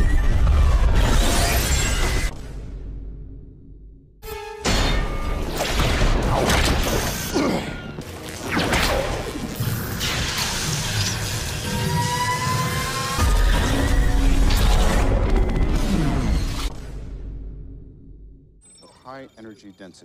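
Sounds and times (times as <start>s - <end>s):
dramatic film score: 0.0s - 20.0s.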